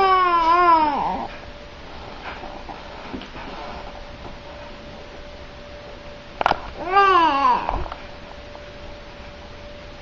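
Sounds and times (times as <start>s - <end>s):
baby cooing: 6.8s - 7.9s.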